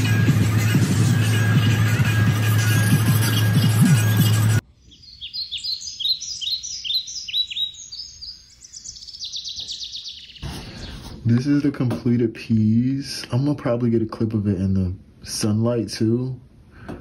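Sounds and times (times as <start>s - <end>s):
background music with low beat: 0.0s - 4.6s.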